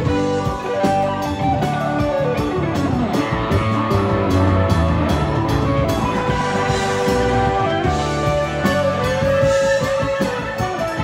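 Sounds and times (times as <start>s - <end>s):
electric guitar lead: 0.0s - 11.0s
rock band playing: 0.0s - 11.0s.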